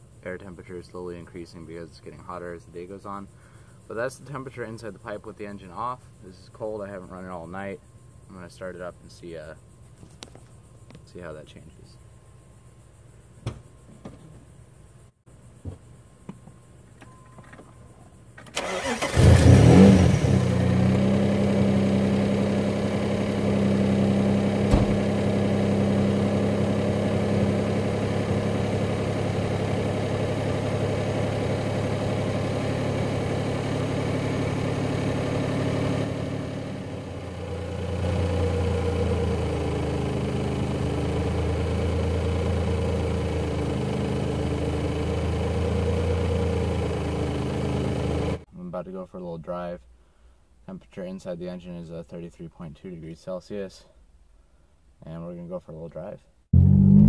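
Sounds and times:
car engine starting and idling: 18.4s - 48.5s, 56.6s - 57.0s.

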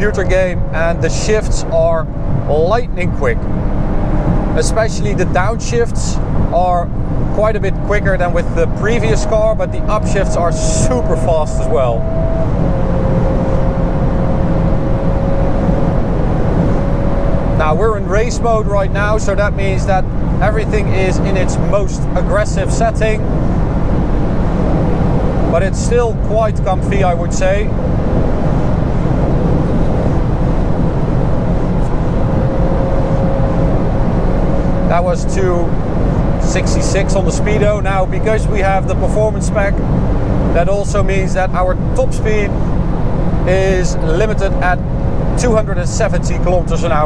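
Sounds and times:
road and wind rumble: 0.0s - 47.0s
steady engine note: 0.0s - 47.0s.

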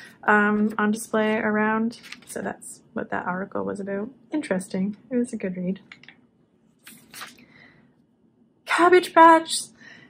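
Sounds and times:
magazine page turning: 2.0s - 2.3s.

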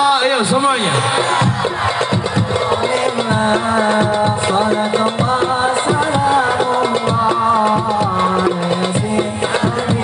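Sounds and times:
frame drums playing quick rhythm: 0.0s - 10.0s
person singing: 2.6s - 10.0s.

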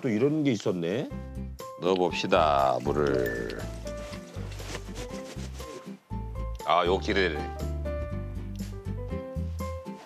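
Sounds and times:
background music with bass line: 1.1s - 10.0s.

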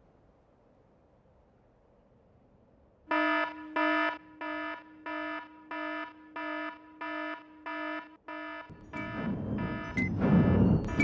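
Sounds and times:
phone alarm beeping: 3.1s - 11.0s.

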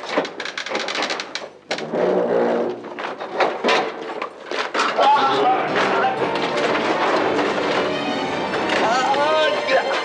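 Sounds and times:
dramatic background music: 5.7s - 10.0s.

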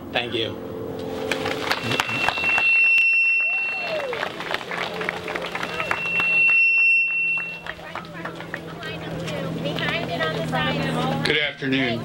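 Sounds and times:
microphone feedback whine: 0.8s - 4.1s, 5.5s - 7.9s.

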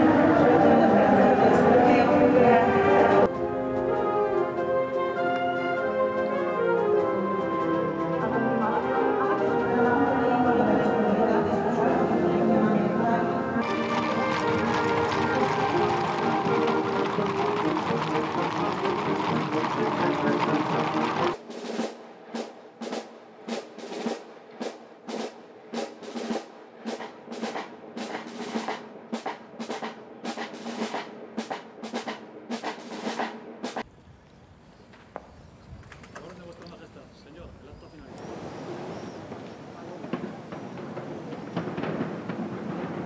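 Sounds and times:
band music playing: 0.0s - 22.0s
hooves clattering on stone: 13.6s - 21.4s
parade drums marching cadence: 13.6s - 33.9s, 39.3s - 43.0s
open-air ambience: 21.3s - 43.0s.

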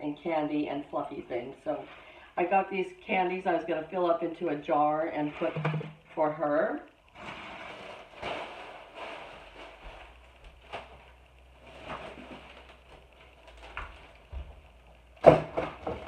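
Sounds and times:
plastic bags rustling: 7.0s - 16.0s.

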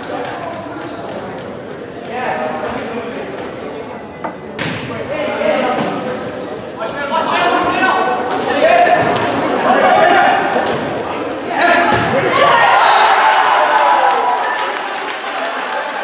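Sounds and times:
spectators shouting and cheering: 11.7s - 16.0s.

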